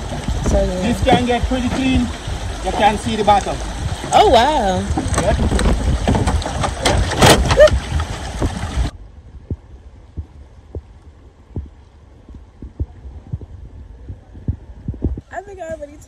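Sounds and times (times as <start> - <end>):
soft knocks and thumps: 0.0 - 8.9
wind rumbling on microphone: 0.0 - 16.0.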